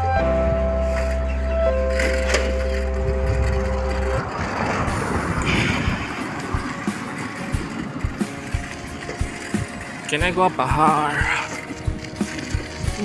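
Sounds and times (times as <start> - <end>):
background music: 0.0 - 13.0
bicycle knocks and rattles: 1.9 - 13.0
rushing noise: 2.0 - 10.3.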